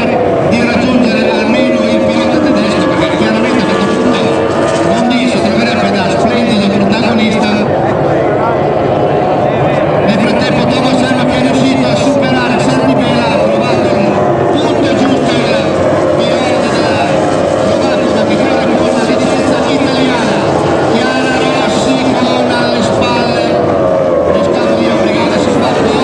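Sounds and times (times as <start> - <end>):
racing powerboat engines droning: 0.0 - 26.0.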